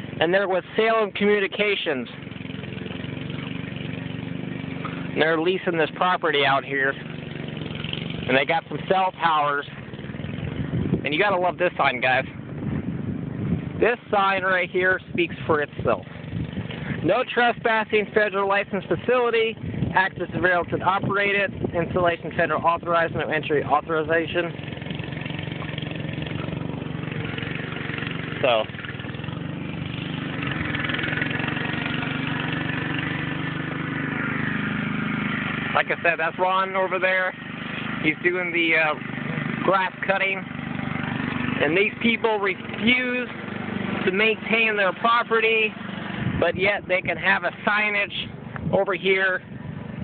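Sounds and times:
riding lawnmower engine running: 0.0s - 50.0s.

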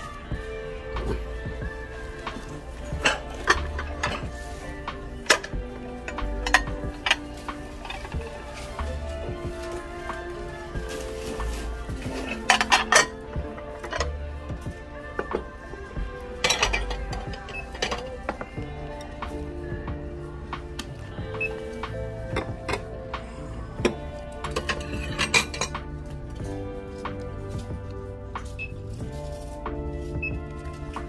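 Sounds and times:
background music: 0.0s - 31.0s
ceramic plates clinking: 2.3s - 8.4s, 12.1s - 14.2s, 16.4s - 19.2s, 23.8s - 25.9s.

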